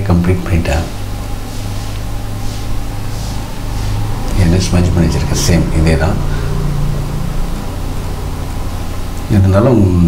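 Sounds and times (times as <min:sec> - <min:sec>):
even hiss: 0:00.0 - 0:10.0
steady low hum: 0:00.0 - 0:10.0.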